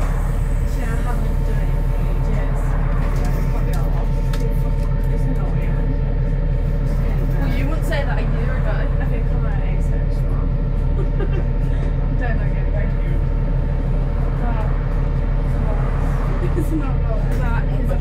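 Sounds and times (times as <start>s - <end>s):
bus engine drone: 0.0s - 18.0s
constant hum: 0.0s - 18.0s
people talking: 0.0s - 18.0s.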